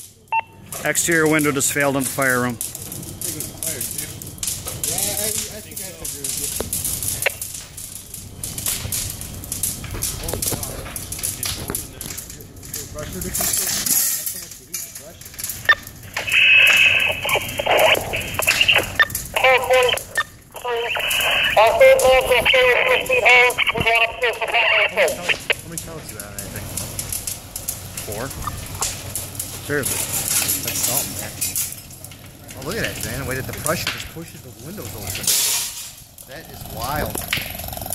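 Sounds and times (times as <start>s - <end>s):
fire crackling and popping: 0.0s - 37.9s
radio voices: 15.6s - 26.6s, 32.5s - 35.3s.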